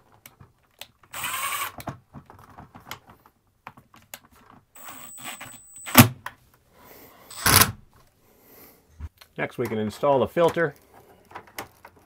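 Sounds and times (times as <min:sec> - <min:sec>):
cordless drill driving screws: 0:01.1 - 0:01.8, 0:04.8 - 0:06.1, 0:07.3 - 0:07.7
drill sharp click: 0:04.8 - 0:06.1.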